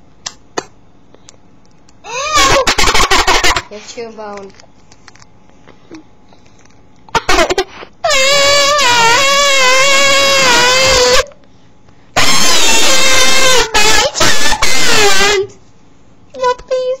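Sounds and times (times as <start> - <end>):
girl squealing high-pitched: 2.0 - 2.8, 12.2 - 15.5.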